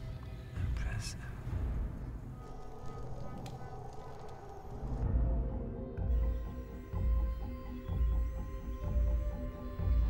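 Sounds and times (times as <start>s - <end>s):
faint sustained music: 0.0s - 10.0s.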